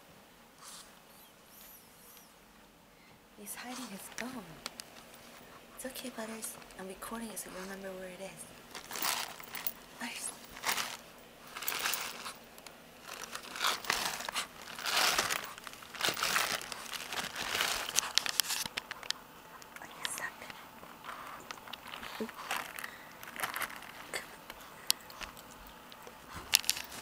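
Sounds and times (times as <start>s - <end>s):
plastic bag crinkling: 8.4s - 19.2s, 21.2s - 25.5s, 26.2s - 27.0s.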